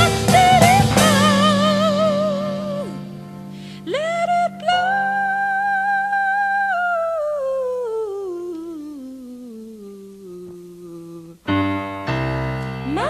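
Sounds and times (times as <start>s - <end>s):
woman singing wordless note: 0.0s - 3.1s, 3.8s - 11.7s
loud chord with piano: 0.0s - 3.9s.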